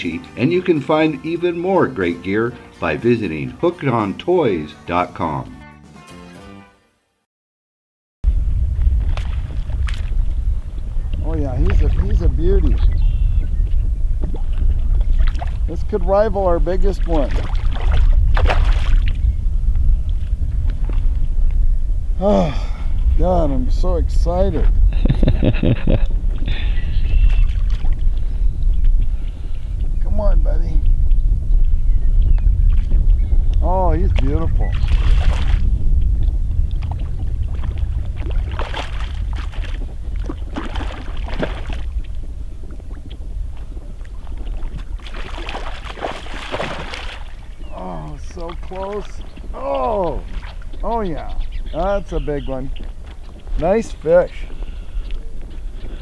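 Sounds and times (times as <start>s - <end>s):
wind on microphone: 8.2s - 56.0s
water splash: 8.8s - 10.4s, 14.2s - 16.0s, 16.8s - 19.2s, 33.7s - 35.7s, 36.7s - 42.1s, 42.8s - 50.9s.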